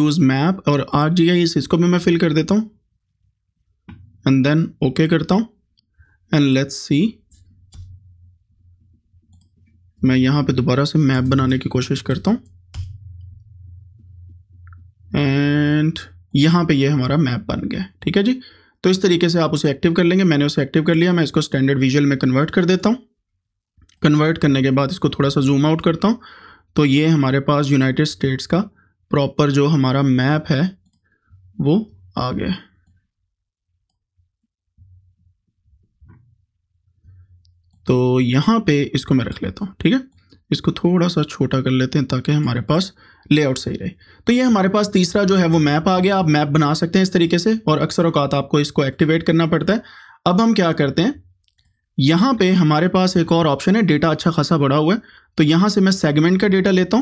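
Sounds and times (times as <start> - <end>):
man speaking: 0.0 - 2.8, 4.2 - 5.6, 6.3 - 7.4, 10.0 - 12.6, 15.0 - 23.1, 24.0 - 30.9, 31.5 - 32.8, 37.8 - 51.2, 52.0 - 57.0
low steady hum: 2.7 - 18.5.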